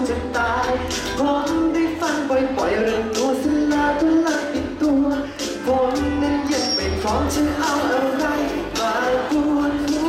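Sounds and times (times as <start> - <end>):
man singing into a microphone: 0.0 - 10.0
pop music accompaniment: 0.0 - 10.0.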